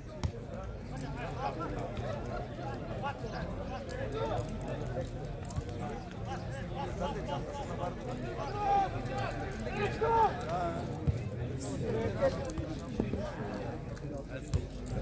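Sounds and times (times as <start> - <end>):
distant voices calling and chatting: 1.1 - 14.0.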